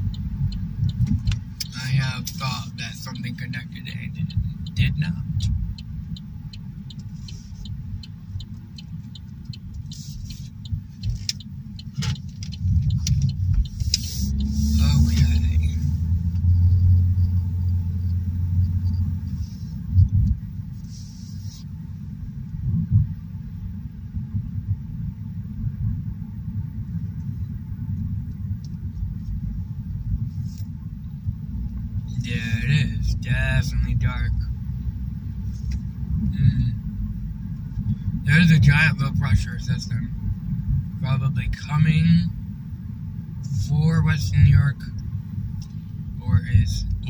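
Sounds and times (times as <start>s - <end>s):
car road and engine rumble: 0.0s - 47.0s.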